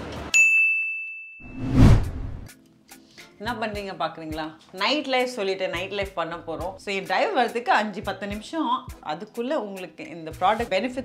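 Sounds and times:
bell-like ding: 0:00.4 - 0:01.6
rising whoosh: 0:01.5 - 0:02.5.

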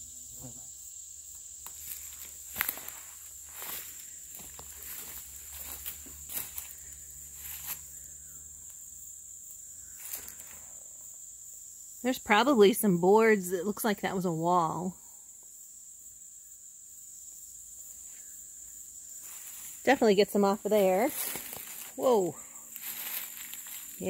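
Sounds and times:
high-pitched insect drone: 0:00.0 - 0:24.0
footsteps crackling through dry brush: 0:01.6 - 0:08.0, 0:10.0 - 0:10.6, 0:19.2 - 0:20.0, 0:20.6 - 0:24.0.

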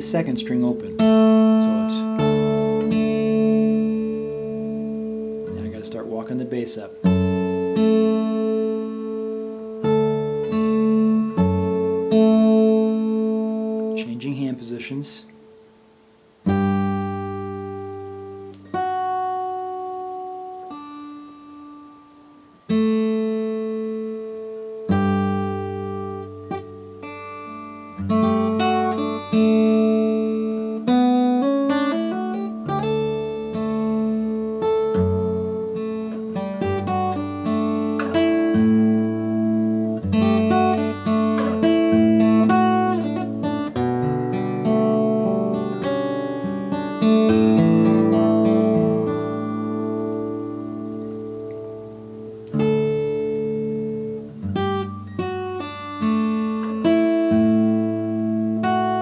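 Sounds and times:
fingerpicked acoustic guitar: 0:00.0 - 0:59.0.

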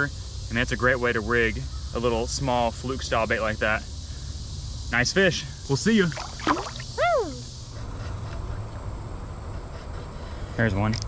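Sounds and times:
water sloshing: 0:06.0 - 0:07.0
low wash of moving water: 0:06.1 - 0:07.0.

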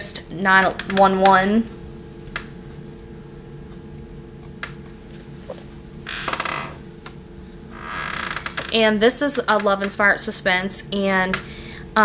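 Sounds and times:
faint steady hum: 0:00.0 - 0:12.0
book being handled: 0:04.9 - 0:05.8
paper pages rustling: 0:05.0 - 0:05.8.

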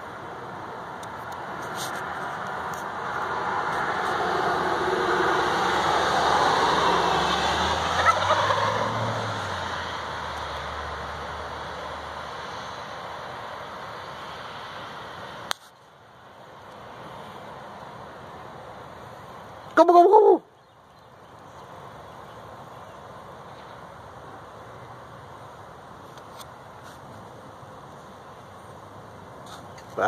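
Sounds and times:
rushing background noise: 0:00.0 - 0:30.0
wild turkey gobbling: 0:07.9 - 0:08.9.

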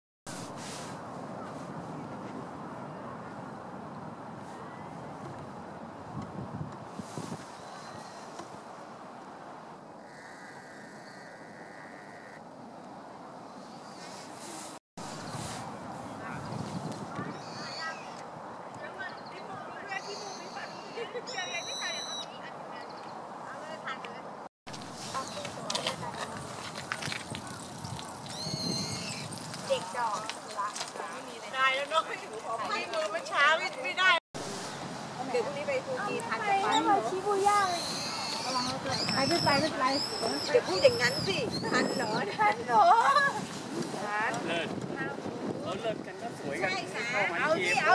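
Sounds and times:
people talking: 0:25.1 - 0:26.6, 0:29.7 - 0:34.2, 0:35.2 - 0:43.4, 0:44.0 - 0:47.9.

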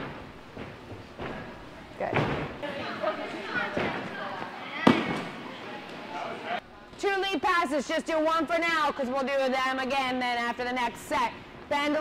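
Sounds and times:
gymnast landing thud: 0:00.0 - 0:02.6.

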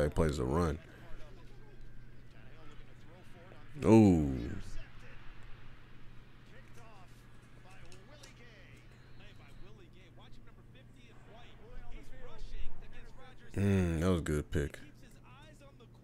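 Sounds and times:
steady low hum: 0:00.0 - 0:16.0
television commentators' voices: 0:00.0 - 0:16.0.

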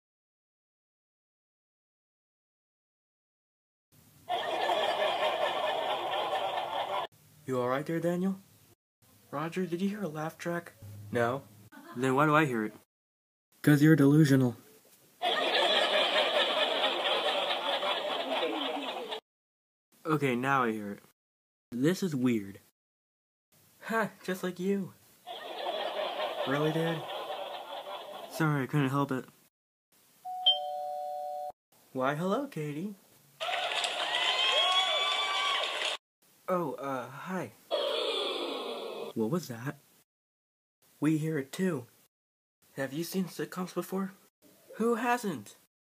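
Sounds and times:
studio audience laughing: 0:04.3 - 0:07.1, 0:15.2 - 0:19.2, 0:25.3 - 0:28.4
doorbell tones: 0:30.3 - 0:31.6.

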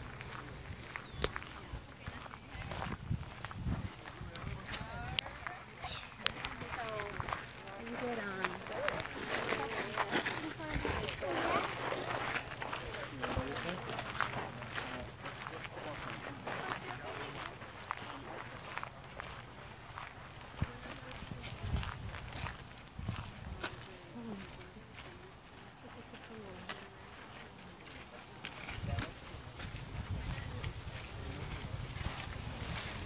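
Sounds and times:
footsteps on a path: 0:00.0 - 0:33.0
people talking indistinctly: 0:00.2 - 0:31.8.

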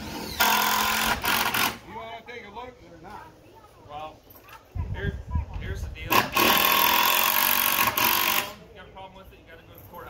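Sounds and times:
power tool running: 0:00.0 - 0:01.8, 0:06.1 - 0:08.6.

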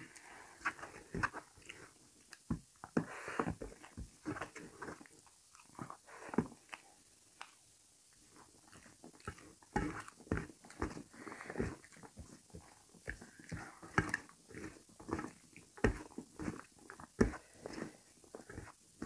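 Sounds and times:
wet chewing and mouth smacking: 0:03.7 - 0:18.8.

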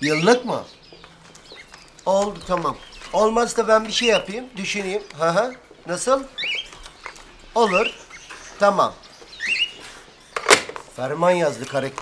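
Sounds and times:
bird chirping: 0:00.0 - 0:12.0
telephone handset clacking down: 0:10.4 - 0:10.8.

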